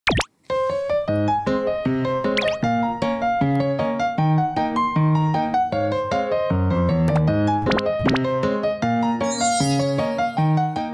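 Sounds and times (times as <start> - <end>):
cartoon pop sweeping in pitch: 0.0 - 0.3, 2.4 - 2.6, 7.6 - 8.2, 9.3 - 10.4.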